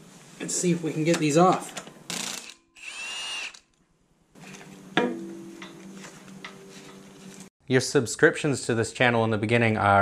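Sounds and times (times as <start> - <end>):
impact wrench hammering and whining: 2.1 - 3.7.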